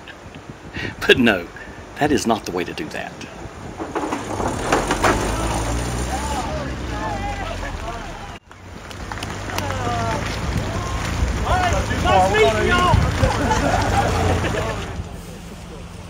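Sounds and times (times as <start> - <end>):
vehicle engine rumbling: 3.2 - 16.0
people calling out: 5.1 - 8.4, 9.4 - 15.0.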